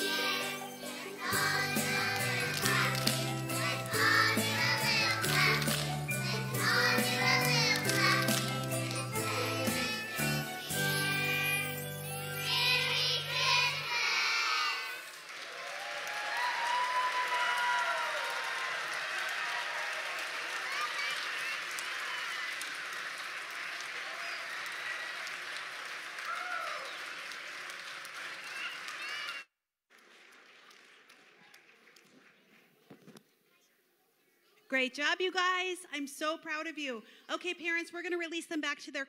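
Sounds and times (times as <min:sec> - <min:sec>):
children singing a song: 0:00.0 - 0:15.1
audience applauding: 0:01.4 - 0:10.0, 0:14.2 - 0:32.8
scattered cheers: 0:15.4 - 0:23.0, 0:23.7 - 0:27.5.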